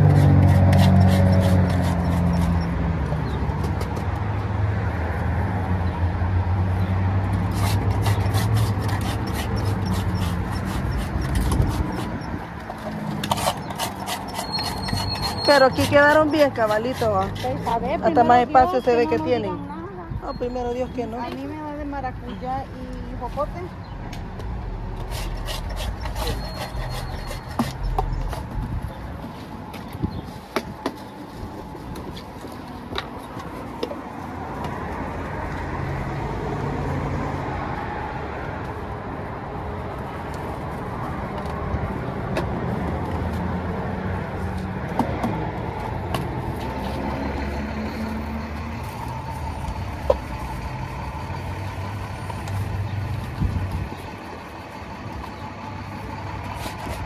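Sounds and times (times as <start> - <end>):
vehicle engine rumbling: 0.0 - 57.0.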